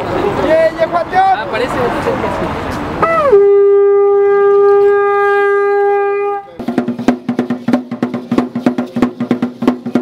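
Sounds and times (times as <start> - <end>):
conch shell trumpet note: 3.0 - 6.6.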